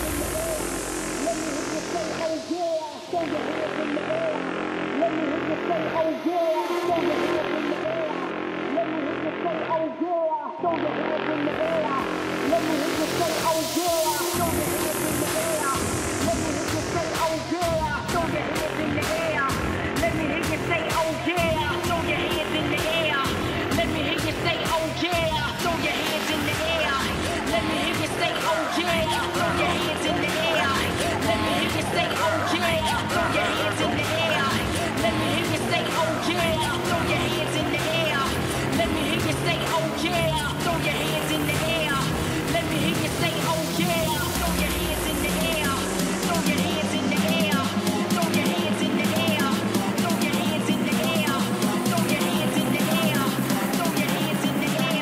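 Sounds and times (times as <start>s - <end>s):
house music: 0.0s - 55.0s.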